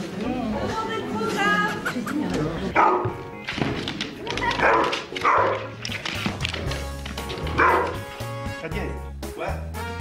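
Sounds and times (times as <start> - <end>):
people talking: 0.2 - 2.8
dog barking and yipping: 4.6 - 5.8, 7.5 - 8.1.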